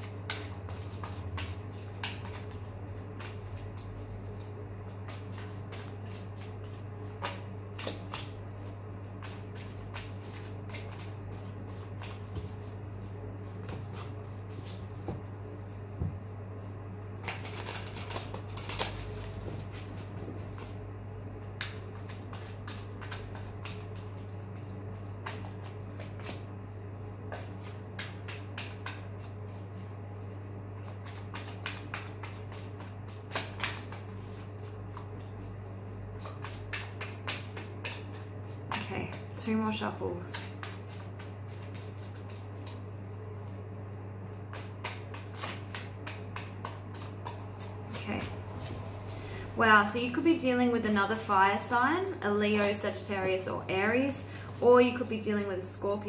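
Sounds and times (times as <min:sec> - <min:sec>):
cards being shuffled: 0:00.0 - 0:15.8, 0:16.6 - 0:20.8, 0:21.6 - 0:26.5, 0:30.8 - 0:39.2, 0:40.3 - 0:43.6, 0:44.3 - 0:49.4
steady low hum: 0:00.0 - 0:56.0.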